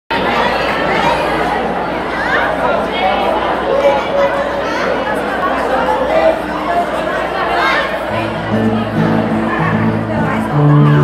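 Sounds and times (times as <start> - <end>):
crowd chattering in hall: 0.1 - 11.0.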